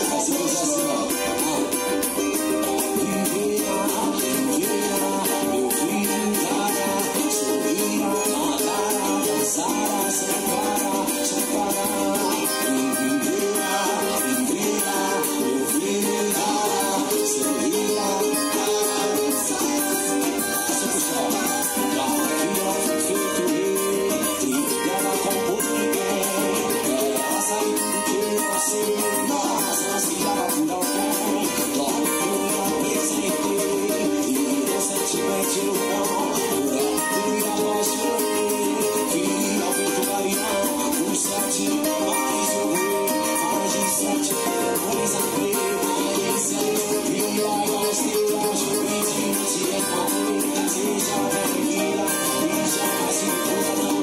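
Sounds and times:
brisk percussion: 0.0 - 54.0
cavaquinho strummed: 0.0 - 54.0
recorded song with singing: 0.0 - 54.0.

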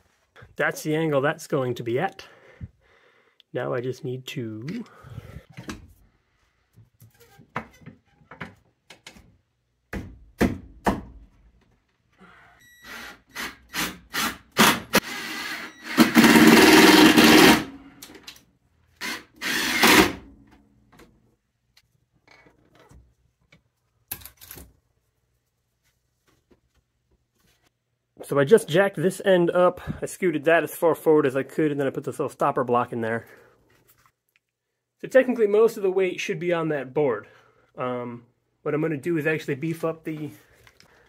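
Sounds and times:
power drill running: 12.8 - 17.7, 19.0 - 20.2.

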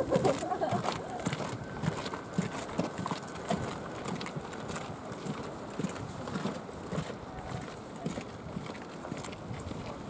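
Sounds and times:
light wind noise: 0.0 - 10.0.

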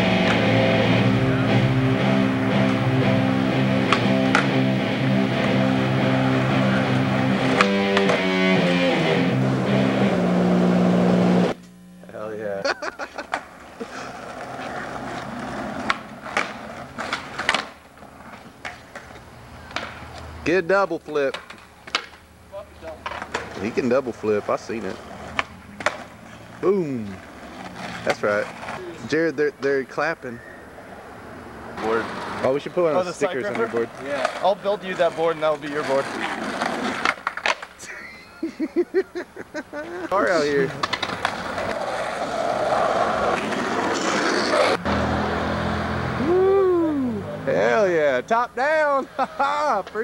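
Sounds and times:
skateboard wheels rolling on asphalt: 0.0 - 11.6, 12.8 - 45.7
skateboard clacking on road: 3.8 - 4.7, 7.4 - 8.3, 13.2 - 20.4, 21.1 - 22.2, 22.8 - 29.0, 31.8 - 32.5, 33.2 - 37.8, 40.6 - 44.8.

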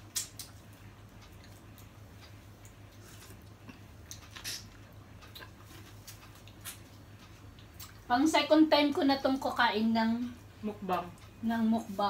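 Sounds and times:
chewing and food handling: 0.0 - 8.1
low steady hum: 0.0 - 12.0.

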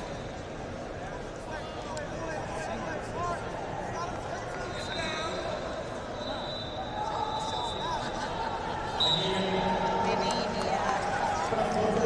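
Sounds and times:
coaches and spectators shouting: 1.0 - 12.0
referee's whistle blast: 6.2 - 8.0, 9.0 - 9.4.

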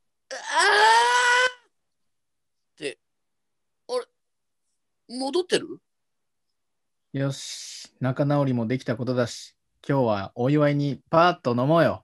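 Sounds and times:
person crying aah: 0.3 - 1.7.

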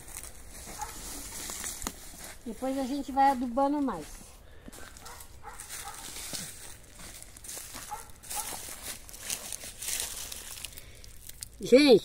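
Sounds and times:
boots crunching dry leaves: 0.0 - 11.6.

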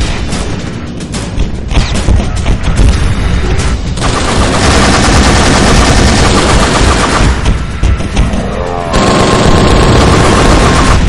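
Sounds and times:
dramatic trailer music: 0.0 - 11.0
rapid machine-gun fire: 4.0 - 7.9, 8.9 - 11.0.

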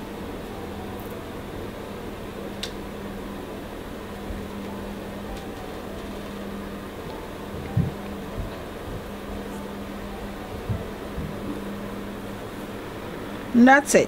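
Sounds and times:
low background hum: 0.0 - 14.0
soft low thumps: 7.1 - 11.8.

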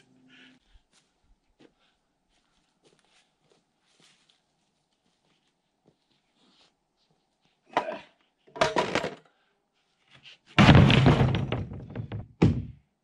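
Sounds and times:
heavy plywood thud: 10.6 - 12.8
plywood knocking on wood frame: 10.6 - 12.8.

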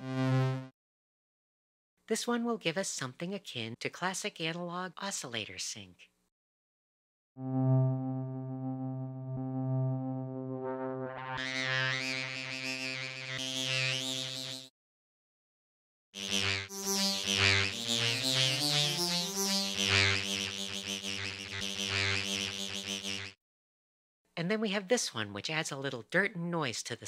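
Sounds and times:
low synthesizer note: 0.0 - 0.7, 7.4 - 14.4, 16.2 - 23.2.

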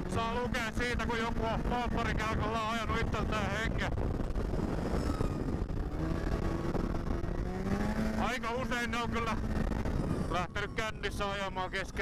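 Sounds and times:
snowmobile engine running: 0.0 - 12.0.

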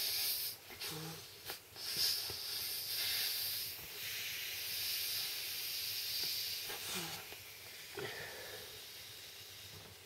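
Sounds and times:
breath blown into air mat valve: 0.0 - 9.8.

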